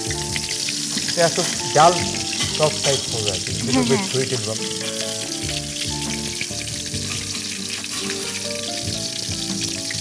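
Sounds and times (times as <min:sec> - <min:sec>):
food sizzling in pan: 0:00.0 - 0:10.0
light background music: 0:00.0 - 0:10.0.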